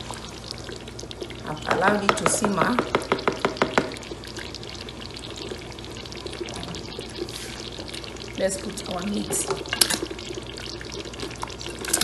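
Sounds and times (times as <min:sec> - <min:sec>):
stew bubbling in a pot: 0:00.0 - 0:12.0
ladle knocking against pot: 0:01.7 - 0:04.0.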